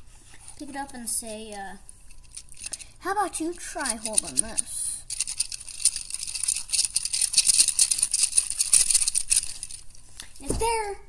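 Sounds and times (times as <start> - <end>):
plastic bricks rattling and clicking: 3.6 - 9.8.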